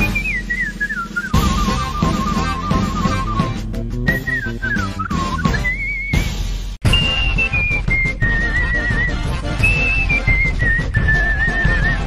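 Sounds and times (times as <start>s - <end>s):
backing music with a beat: 0.0s - 12.0s
whistled melody: 0.0s - 12.0s.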